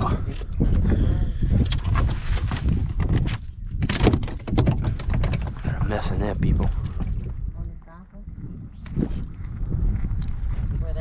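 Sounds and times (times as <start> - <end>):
wind rumble on microphone: 0.0 - 11.0
gear knocking and clattering: 2.9 - 7.4.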